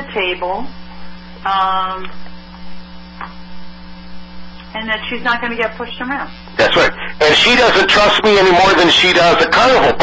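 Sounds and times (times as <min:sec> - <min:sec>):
low electrical mains hum: 0:00.0 - 0:10.0.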